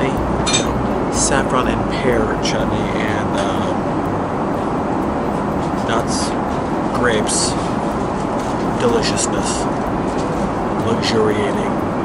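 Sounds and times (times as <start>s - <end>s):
airplane cabin noise: 0.0s - 12.0s.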